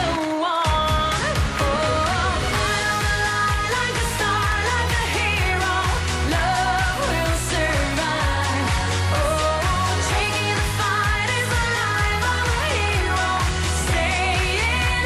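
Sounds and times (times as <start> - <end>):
pop backing track with beat: 0.0 - 15.0
woman singing into microphone: 0.0 - 15.0.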